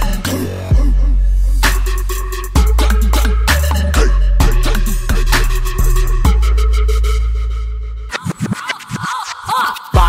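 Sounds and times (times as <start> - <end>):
funk bass beat: 0.0 - 8.6
turntable scratching: 8.1 - 10.0.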